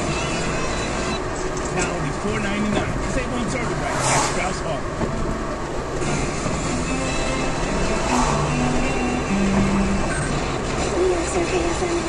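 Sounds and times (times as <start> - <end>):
road and engine noise: 0.0 - 12.0
car radio music: 4.8 - 12.0.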